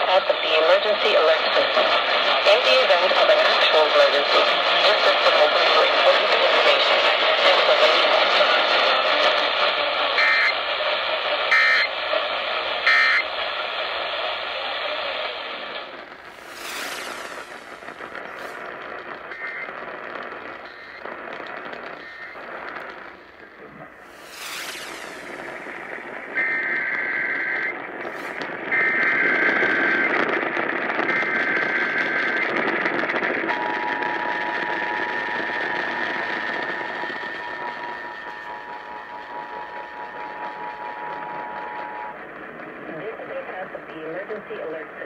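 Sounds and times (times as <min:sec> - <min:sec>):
radio static hiss and crackle: 0:00.0 - 0:45.0
faint radio whistle: 0:10.0 - 0:30.3, 0:31.0 - 0:32.7, 0:33.4 - 0:42.4
data-burst tones: 0:10.1 - 0:12.0, 0:12.7 - 0:14.0, 0:15.8 - 0:42.7.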